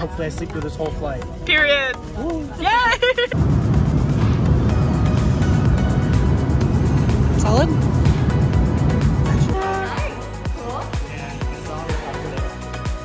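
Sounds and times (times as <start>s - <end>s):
background music: 0.0s - 13.0s
airliner cabin rumble: 3.0s - 9.6s.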